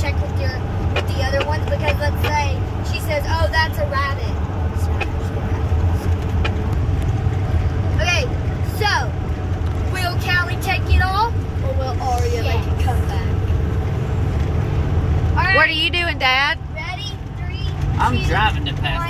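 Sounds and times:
children talking: 0:00.0 - 0:05.8
vehicle road and engine rumble: 0:00.0 - 0:19.0.

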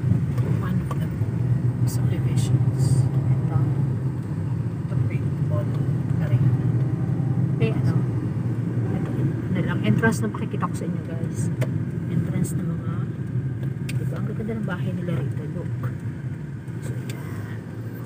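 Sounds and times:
car engine and tyres rumbling: 0:00.0 - 0:18.0.

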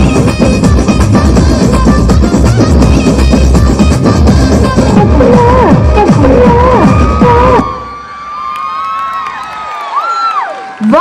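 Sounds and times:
loud dance music: 0:00.0 - 0:08.1
audience cheering and shouting: 0:05.3 - 0:11.0.

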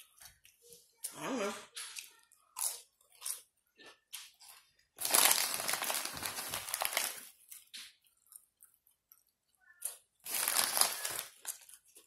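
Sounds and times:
chips crunching: 0:01.8 - 0:12.0.

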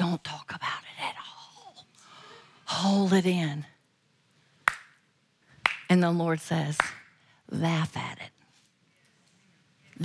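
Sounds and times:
woman speaking: 0:00.0 - 0:01.9, 0:02.7 - 0:03.8, 0:05.8 - 0:08.4.

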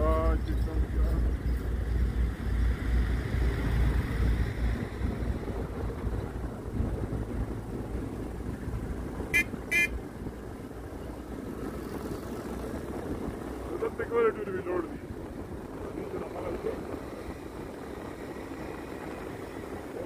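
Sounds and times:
road vehicle rumble: 0:00.0 - 0:20.0
vehicle horn toots: 0:09.3 - 0:10.0.

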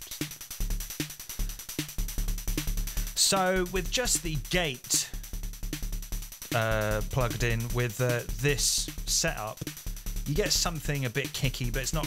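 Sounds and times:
noise hi-hat: 0:00.0 - 0:12.0
synth kick drum thump: 0:00.2 - 0:03.2, 0:03.8 - 0:10.9.

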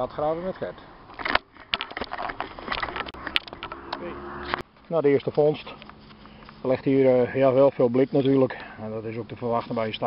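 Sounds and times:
camera handling rustling and clicks: 0:01.1 - 0:04.6
low hum: 0:02.9 - 0:04.7.

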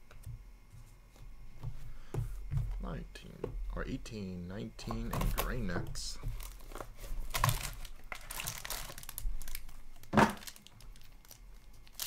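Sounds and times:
foil wrapper crinkling and tearing: 0:06.4 - 0:12.0.

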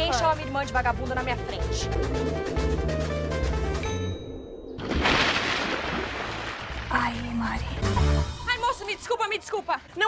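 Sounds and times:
dramatic music with drum beat: 0:00.8 - 0:04.1.

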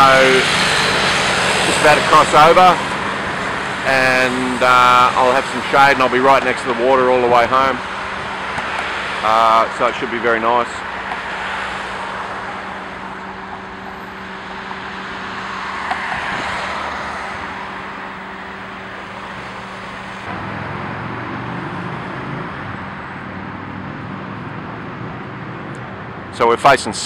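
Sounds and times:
cars driving past: 0:00.0 - 0:27.0.

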